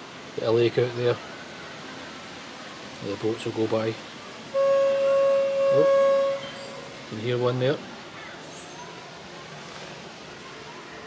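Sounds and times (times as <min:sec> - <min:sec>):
outdoor ambience hiss: 0:00.0 - 0:11.0.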